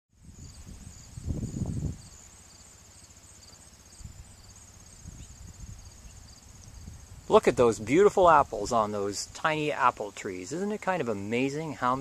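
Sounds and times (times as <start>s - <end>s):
short insect chirp: 0.2s - 7.3s
insects trilling: 0.2s - 12.0s.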